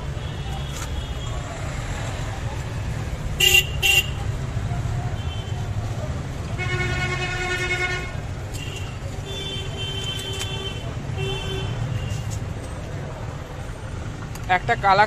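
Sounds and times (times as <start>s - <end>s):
traffic engine rumble: 0.0s - 15.0s
vehicle horns honking: 3.4s - 4.2s, 6.4s - 12.3s.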